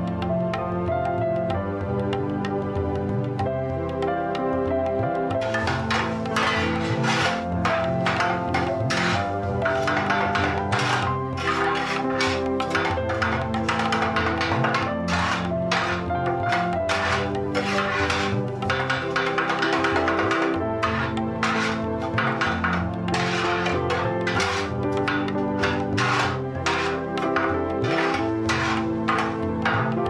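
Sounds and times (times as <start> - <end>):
background music: 0.0 - 30.0
metal blades clattering on griddle: 5.4 - 30.0.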